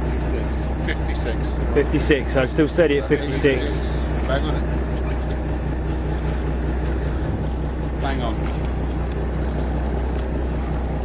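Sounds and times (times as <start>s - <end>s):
boat engine droning: 0.0s - 11.0s
water noise: 0.0s - 11.0s
wind: 0.0s - 11.0s.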